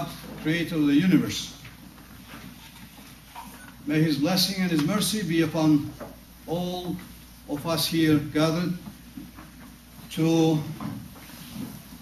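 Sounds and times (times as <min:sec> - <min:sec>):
man speaking into a microphone: 0:00.0 - 0:01.6, 0:03.8 - 0:08.9, 0:10.1 - 0:10.9.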